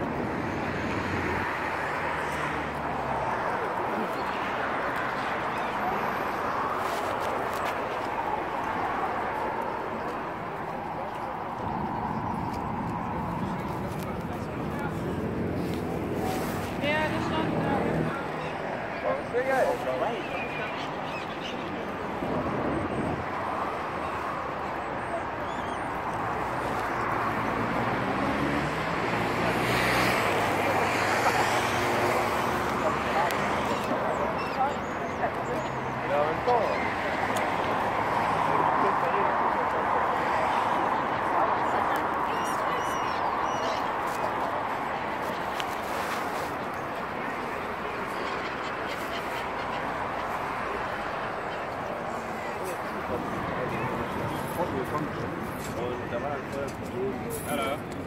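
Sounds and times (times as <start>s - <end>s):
chatter of passers-by: 0.0s - 58.0s
murmur of people talking: 0.0s - 58.0s
steady traffic noise: 0.0s - 58.0s.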